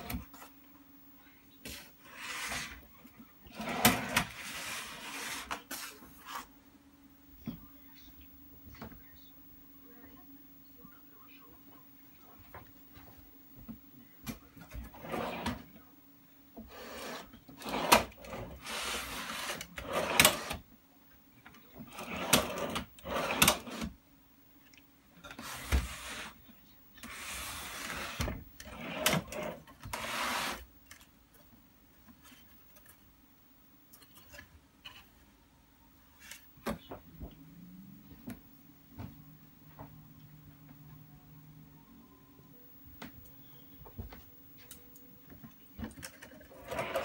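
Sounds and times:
faint low hum: 0.0 - 47.0.

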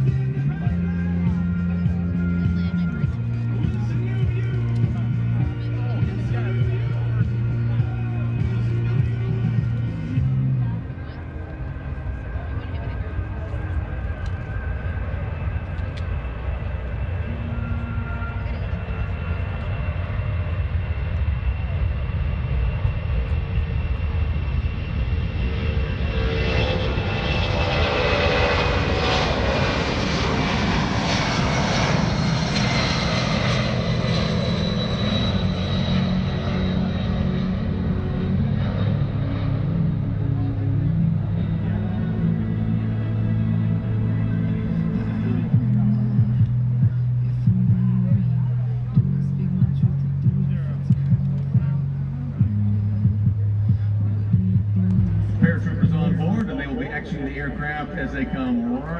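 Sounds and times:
jet aircraft taking off: 0.0 - 58.9.

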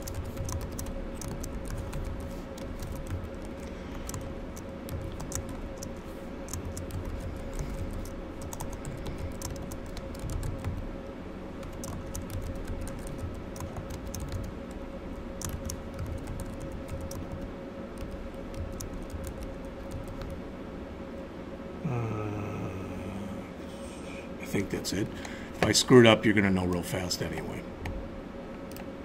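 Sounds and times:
keyboard typing: 0.0 - 10.9, 11.6 - 20.4
faint background hum: 0.0 - 29.0.

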